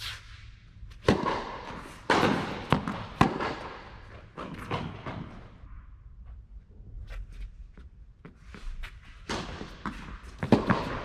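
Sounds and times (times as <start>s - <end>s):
tennis ball hit and bouncing: 0.9s - 5.5s, 9.2s - 11.0s.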